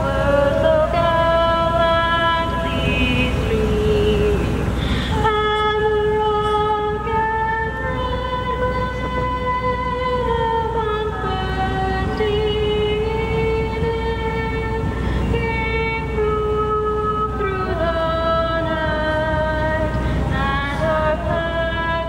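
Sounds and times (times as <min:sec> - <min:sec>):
low background rumble: 0:00.0 - 0:22.0
slow melody of long notes: 0:00.0 - 0:22.0.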